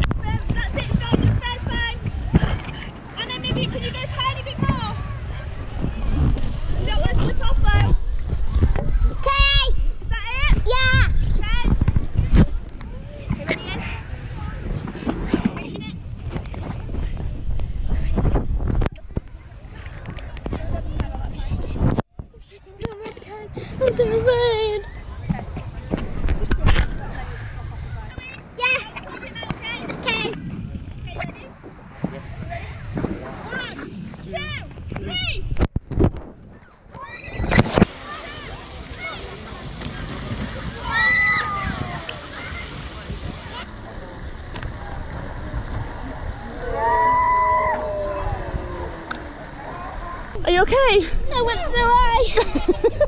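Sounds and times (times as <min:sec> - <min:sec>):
low rumbling outdoor noise: 0:00.0 - 0:53.0.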